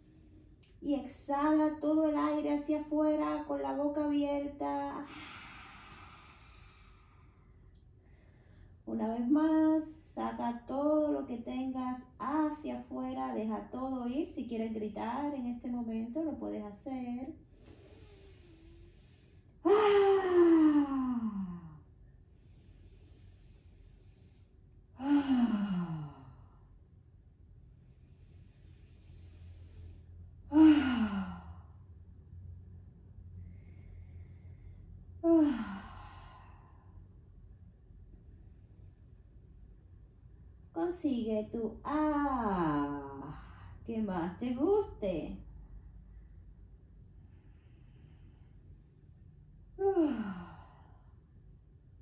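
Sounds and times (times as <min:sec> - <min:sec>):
deep breath out: 0:00.0 - 0:00.8, 0:05.0 - 0:08.8, 0:17.4 - 0:26.8, 0:27.7 - 0:32.0
faint room hum: 0:00.0 - 0:52.0
woman sighing ahh: 0:17.6 - 0:21.8, 0:25.0 - 0:26.5, 0:30.5 - 0:31.7, 0:49.8 - 0:50.9.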